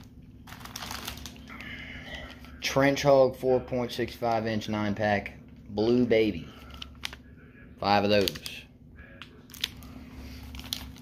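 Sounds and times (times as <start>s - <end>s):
plastic packet crinkling: 0.0s - 2.6s, 6.6s - 7.3s, 7.9s - 11.0s.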